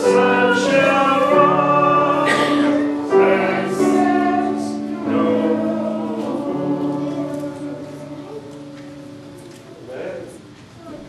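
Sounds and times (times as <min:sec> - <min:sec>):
choir singing a hymn: 0:00.0 - 0:09.9.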